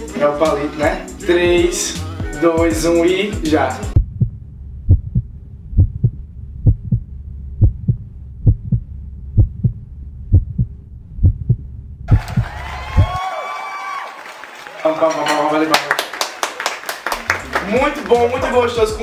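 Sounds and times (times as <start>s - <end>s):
heartbeat thumps: 3.9s - 13.2s
steady low hum: 4.0s - 12.4s.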